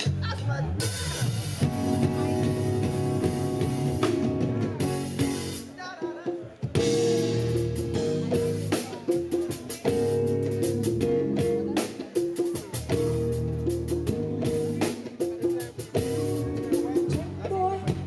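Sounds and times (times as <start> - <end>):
bass guitar: 0.0 - 5.8, 6.6 - 18.0
congas: 0.0 - 18.0
drum kit: 0.0 - 18.0
keyboards: 0.0 - 18.0.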